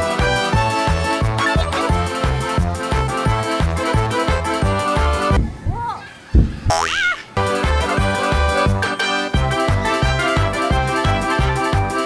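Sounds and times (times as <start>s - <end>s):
background music: 0.0s - 5.4s, 7.4s - 12.0s
springy boing glide: 6.7s - 7.2s.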